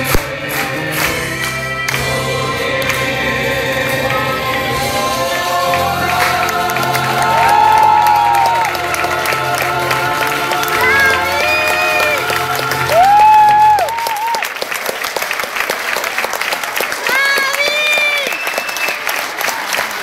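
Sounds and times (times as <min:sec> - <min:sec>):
chorus of voices singing: 0:00.0 - 0:13.9
audience crowd noise: 0:00.0 - 0:20.0.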